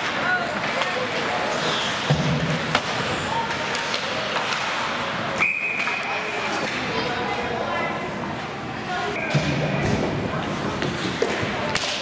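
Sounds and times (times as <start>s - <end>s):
voices echoing in arena: 0.0s - 12.0s.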